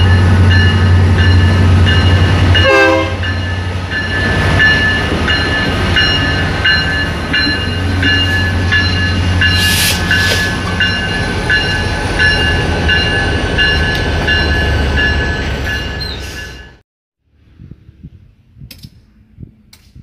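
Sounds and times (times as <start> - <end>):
locomotive bell ringing: 0.0 - 16.8
train cars rolling: 0.0 - 16.8.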